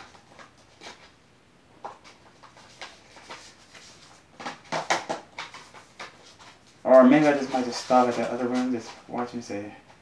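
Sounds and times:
paper rustling: 1.8s - 10.0s
plastic cases knocking: 4.4s - 5.6s.

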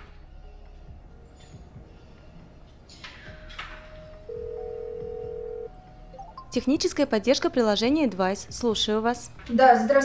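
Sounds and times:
telephone ringback beep: 4.3s - 6.6s.

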